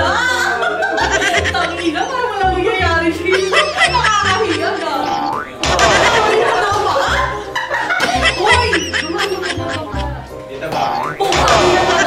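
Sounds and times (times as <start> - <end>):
background music: 0.0 - 12.0
rising boing sound effect: 5.0 - 6.5, 10.8 - 12.0.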